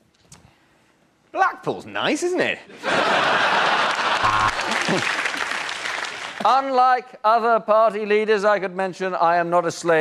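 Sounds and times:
audience applauding: 3.2 - 6.4.

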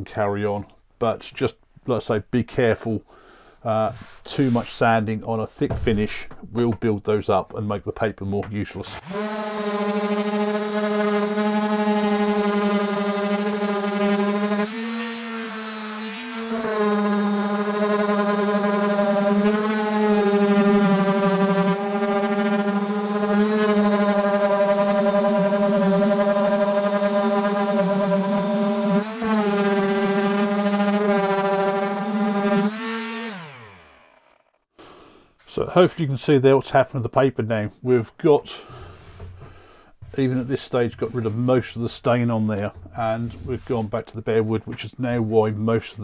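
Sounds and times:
sander winding down: 8.9 - 34.6
orbital sander humming: 9.0 - 34.6.

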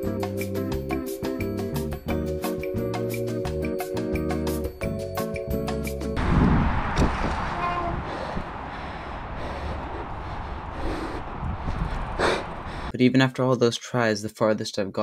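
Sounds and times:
background music: 0.0 - 6.2
mountain bike trail noise: 6.2 - 12.9
wind rush: 6.2 - 12.9.

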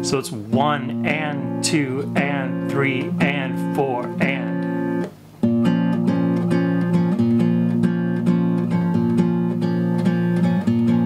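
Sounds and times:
fingerpicked classical guitar: 0.0 - 11.0.

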